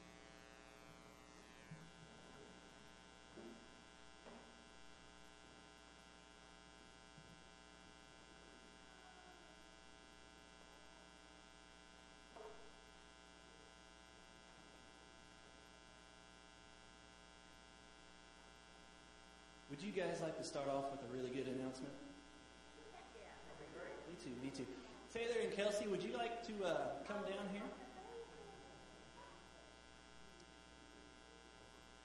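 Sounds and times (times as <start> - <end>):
faint electrical mains hum: 0.0 - 32.0.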